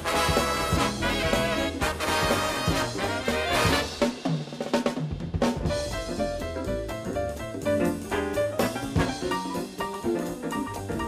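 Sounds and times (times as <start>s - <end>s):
big band playing fast swing: 0.0s - 11.0s
snare and bass drum: 0.0s - 11.0s.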